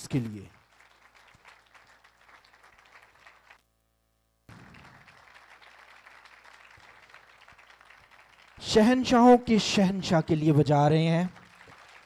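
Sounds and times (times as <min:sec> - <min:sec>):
congregation clapping: 0:00.0 - 0:03.6, 0:04.5 - 0:12.0.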